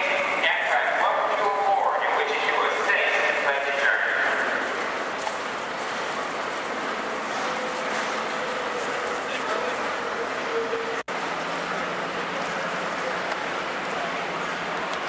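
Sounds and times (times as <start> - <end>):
station platform din: 0.0 - 15.0
footsteps of people walking: 3.7 - 10.0.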